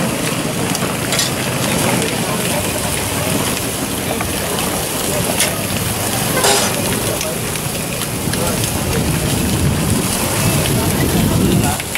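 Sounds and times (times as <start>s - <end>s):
hot dogs sizzling on griddle: 0.0s - 11.9s.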